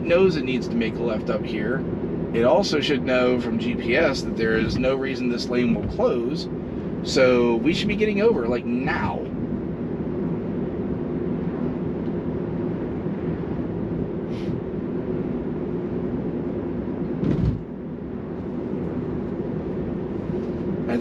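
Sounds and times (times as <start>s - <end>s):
road and tyre noise in car cabin: 0.0s - 21.0s
thump: 17.2s - 17.6s.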